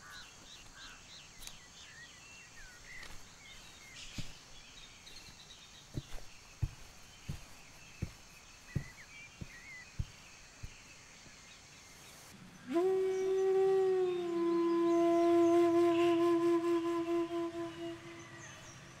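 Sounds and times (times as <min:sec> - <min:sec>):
flute long held note: 0:12.6 - 0:19.0.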